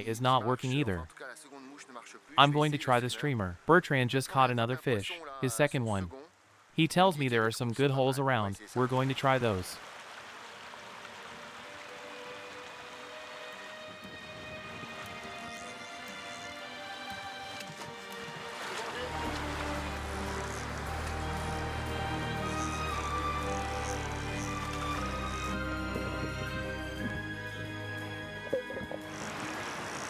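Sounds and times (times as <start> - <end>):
sustained background music: 10.8 - 30.0
bass layer: 19.2 - 29.4.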